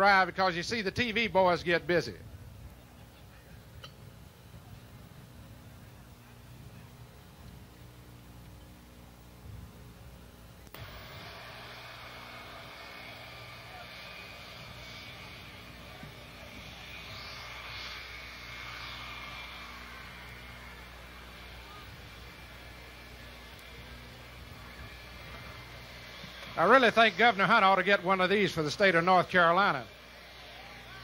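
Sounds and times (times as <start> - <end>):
distant jet engines: 0.0 - 31.0
faint crowd murmur: 2.2 - 31.0.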